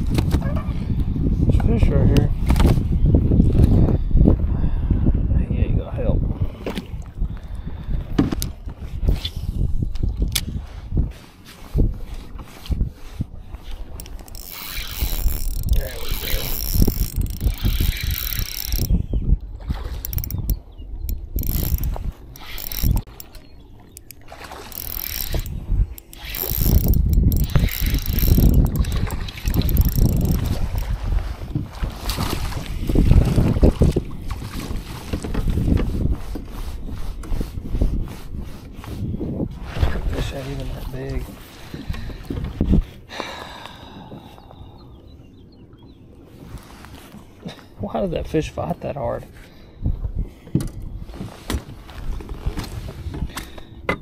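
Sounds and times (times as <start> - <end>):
wind rumble on microphone: 0.0 - 23.4, 24.7 - 44.8, 49.7 - 54.0
reel drag ratcheting: 13.8 - 19.1, 19.9 - 31.0
fishing reel cranking: 14.0 - 19.0, 20.0 - 30.9.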